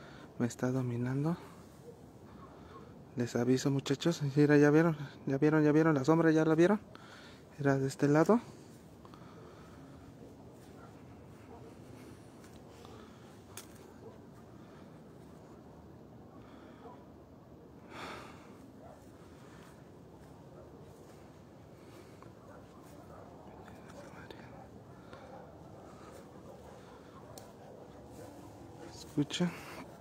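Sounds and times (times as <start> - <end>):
faint whispering: 0.0 - 3.3, 6.9 - 30.0
breathing close to microphone: 6.9 - 7.5.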